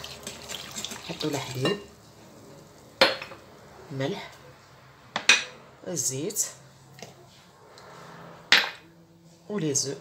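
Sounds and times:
kitchenware knocking on stone worktop: 0:03.0 - 0:03.4, 0:05.1 - 0:05.5, 0:08.5 - 0:08.8.

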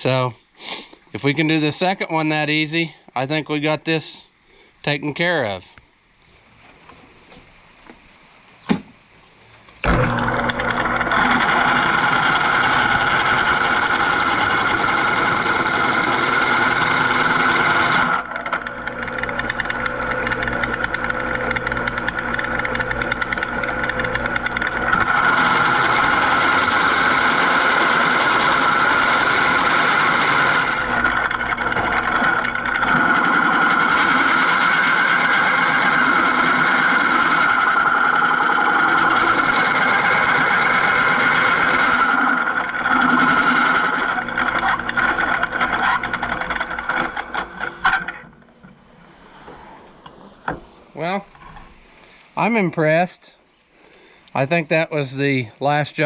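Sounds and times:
drill press whining through steel: 0:09.8 - 0:50.7.

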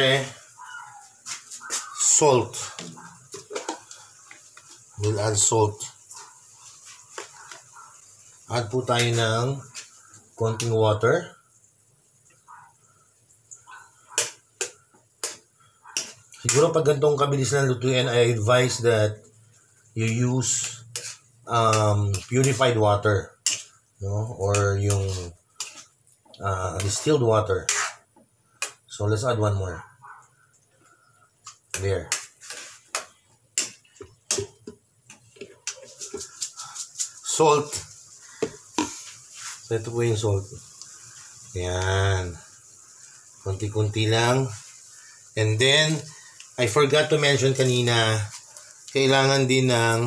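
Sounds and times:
spatula scraping metal frying pan: 0:15.2 - 0:16.7, 0:20.5 - 0:22.7, 0:23.4 - 0:23.8, 0:24.5 - 0:25.9, 0:26.8 - 0:28.1, 0:32.1 - 0:33.0.

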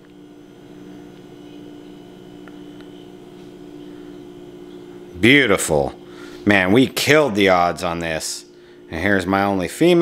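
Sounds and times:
steady low room hum: 0:00.0 - 0:10.0.

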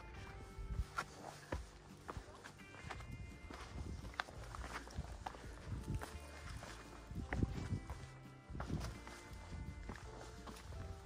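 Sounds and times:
footsteps on rock: 0:00.0 - 0:11.0
quiet background music: 0:00.0 - 0:11.0.

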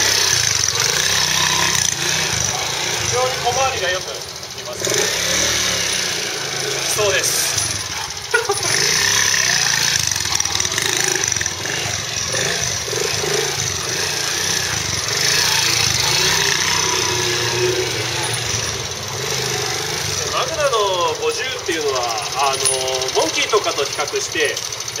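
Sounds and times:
motorcycle engine thumping: 0:00.0 - 0:20.3.

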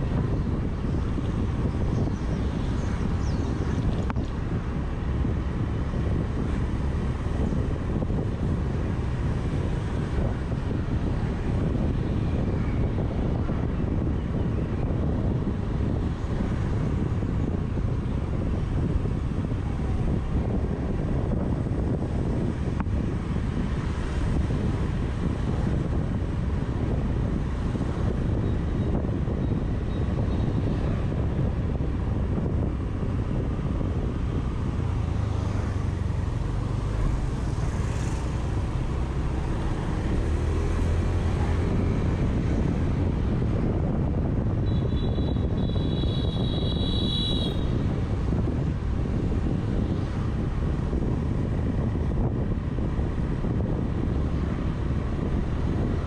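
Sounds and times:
motorbikes nearby: 0:00.0 - 0:56.0
wind on microphone: 0:00.0 - 0:56.0.

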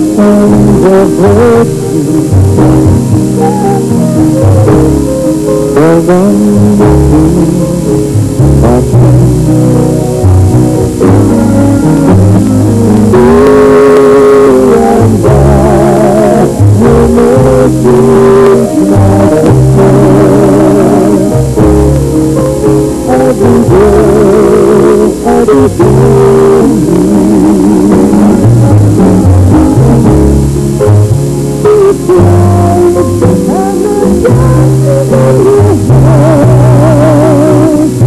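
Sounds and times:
live band playing: 0:00.0 - 0:38.0
man and woman singing duet: 0:12.0 - 0:21.4, 0:31.7 - 0:38.0.

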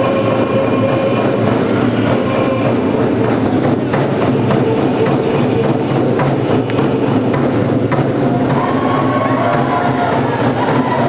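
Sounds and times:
group of voices singing: 0:00.0 - 0:11.0
hand drums beating: 0:00.0 - 0:11.0.

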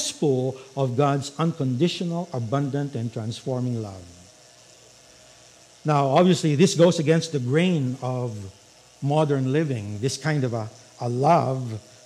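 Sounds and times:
man speaking: 0:00.0 - 0:04.2, 0:05.8 - 0:11.8
faint room hiss: 0:00.0 - 0:12.0.

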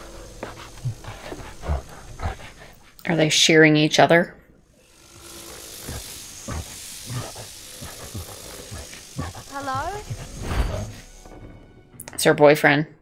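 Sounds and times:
steady hiss: 0:00.0 - 0:03.3, 0:04.8 - 0:11.4.

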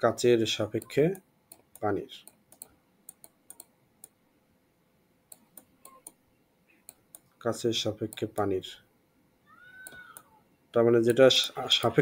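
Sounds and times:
soft clicks: 0:00.8 - 0:04.2, 0:05.3 - 0:06.2, 0:09.8 - 0:10.3.

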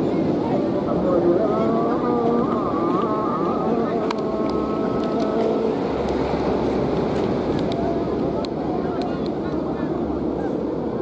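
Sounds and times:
kite hummers droning: 0:00.0 - 0:11.0
wind on microphone: 0:00.0 - 0:11.0.

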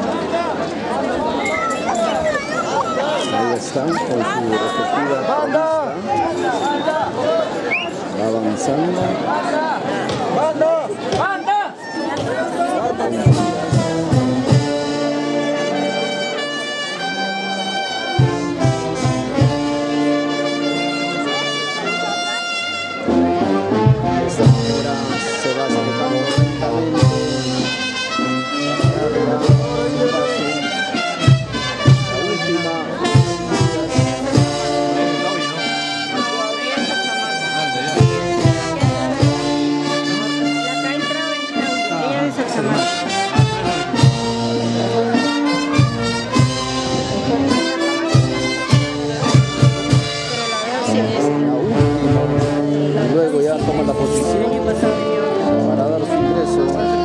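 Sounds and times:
brass band playing: 0:00.0 - 0:09.5, 0:12.6 - 0:57.0
drum beats: 0:10.0 - 0:21.4, 0:22.1 - 0:57.0.

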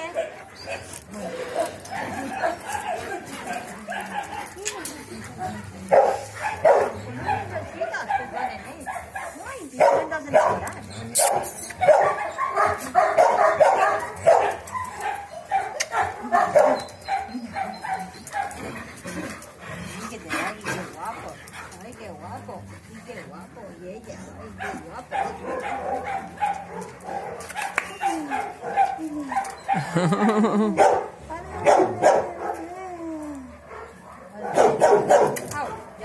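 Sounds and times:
dogs whining and yipping: 0:00.0 - 0:08.8, 0:10.2 - 0:20.6, 0:24.2 - 0:35.9
dogs barking: 0:00.0 - 0:21.7, 0:24.4 - 0:32.7, 0:33.5 - 0:36.0.

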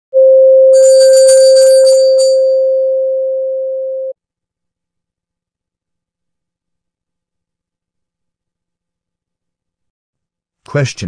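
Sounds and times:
jingle of chimes: 0:00.8 - 0:02.7
steady ringing tone: 0:00.8 - 0:02.9.

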